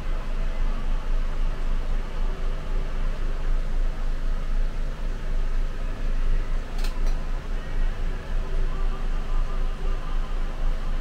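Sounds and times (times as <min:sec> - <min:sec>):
bus engine rumble and hum: 0:00.0 - 0:11.0.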